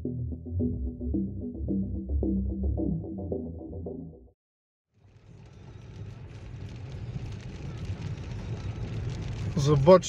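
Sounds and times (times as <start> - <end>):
car engine and tyres rumbling: 5.0 - 10.0.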